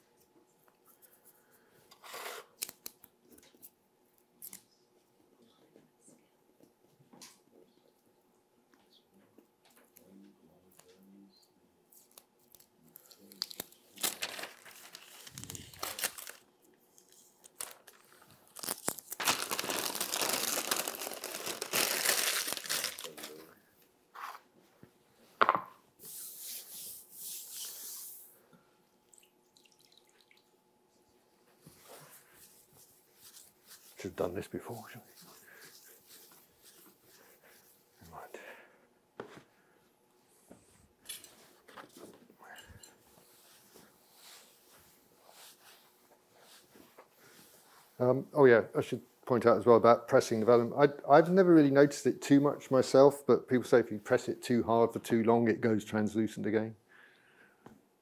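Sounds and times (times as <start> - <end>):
paper rustling and crumpling: 13.2 - 23.5.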